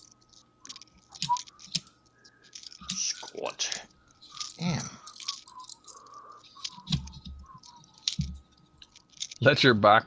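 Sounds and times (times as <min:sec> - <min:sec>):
coins clicking while handled: 0:00.0 - 0:09.4.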